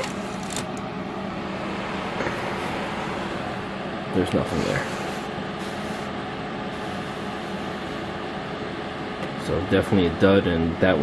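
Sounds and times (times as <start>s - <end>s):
fan humming and hissing: 0.0s - 11.0s.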